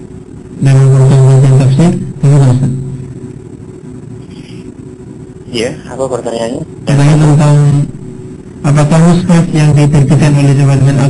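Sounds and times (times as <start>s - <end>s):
faint hum: 0.0s - 11.0s
low background rumble: 0.0s - 11.0s
person speaking: 5.5s - 11.0s.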